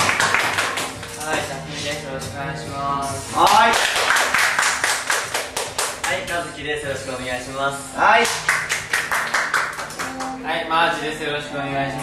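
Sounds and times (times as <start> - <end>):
people clapping: 0.0 - 1.3, 3.4 - 6.3, 8.2 - 10.4.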